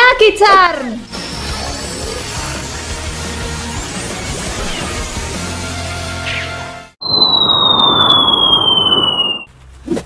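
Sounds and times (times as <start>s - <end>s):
cartoon falling whistle: 6.3s - 9.5s.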